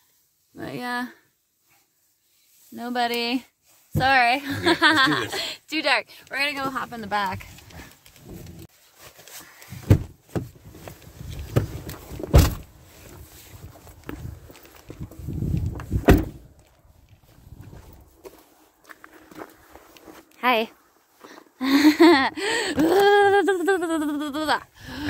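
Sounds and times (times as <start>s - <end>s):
rustling: 6.2s - 21.6s
car doors shutting: 11.5s - 12.7s, 15.8s - 16.4s
footsteps on snow: 12.7s - 16.0s, 16.6s - 21.6s.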